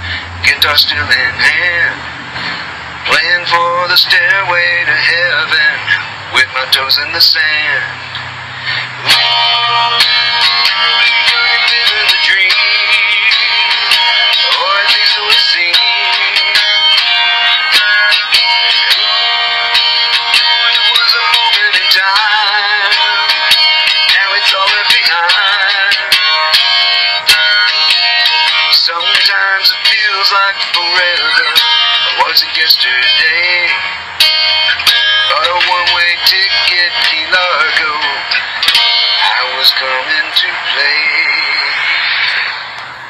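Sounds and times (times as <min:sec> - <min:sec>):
strummed guitar: 0:00.0 - 0:43.0
wavering lead melody: 0:08.9 - 0:28.7, 0:29.8 - 0:42.0.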